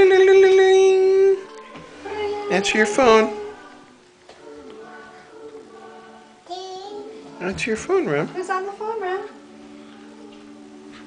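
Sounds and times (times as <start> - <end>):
toddler singing drawn-out tones: 6.4 - 7.3.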